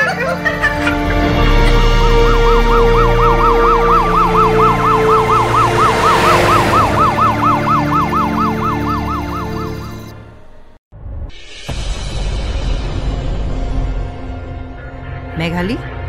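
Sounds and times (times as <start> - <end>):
musical underscore: 0.0 - 10.7
police siren yelping: 0.3 - 10.1
rush of noise: 2.2 - 9.7.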